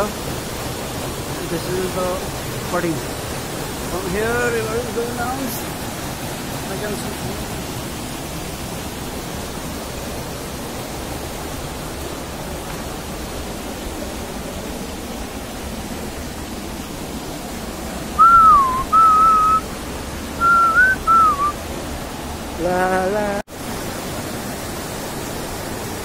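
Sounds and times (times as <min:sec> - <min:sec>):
stream rushing over boulders: 0:00.0 - 0:26.0
person whistling swooping notes: 0:18.2 - 0:19.6, 0:20.4 - 0:21.6.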